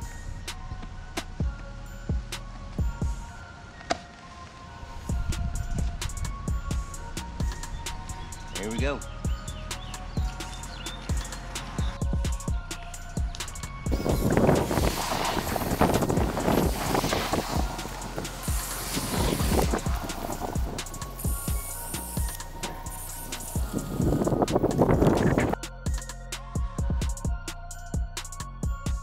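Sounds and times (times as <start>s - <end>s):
music with steady beat: 0.0s - 4.0s, 5.1s - 29.0s
hose-end sprayer hissing: 13.9s - 25.6s.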